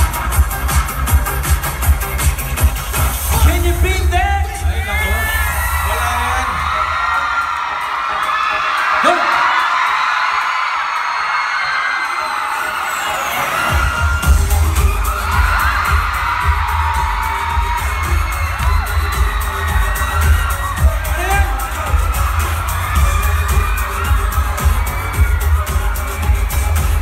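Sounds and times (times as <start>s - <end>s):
heavy bass beat: 0.0s - 7.2s, 13.7s - 27.0s
live pop dance music: 0.0s - 27.0s
audience screaming: 3.3s - 27.0s.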